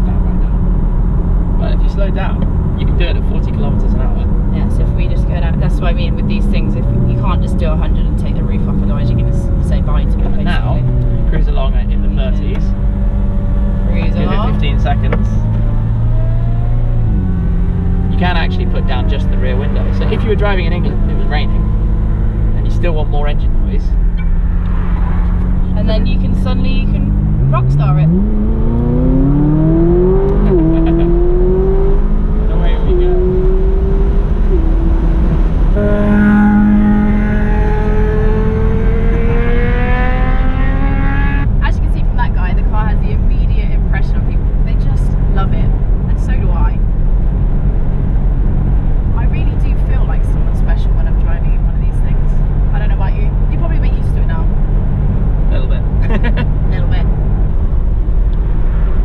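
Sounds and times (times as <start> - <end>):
car engine accelerating hard: 0.0 - 59.0
road drone: 0.0 - 59.0.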